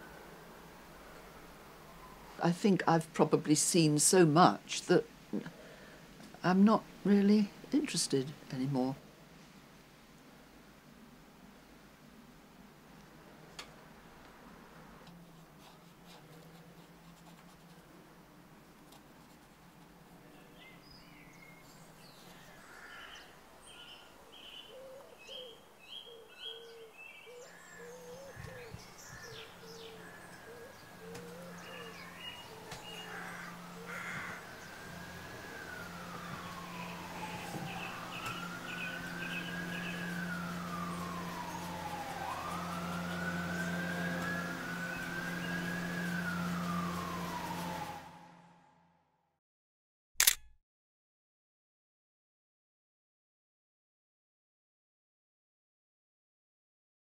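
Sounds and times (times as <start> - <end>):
emergency vehicle siren wailing: 0.0 - 2.5, 26.5 - 48.8
birds chirping: 20.3 - 48.0
low steady hum: 27.6 - 48.7.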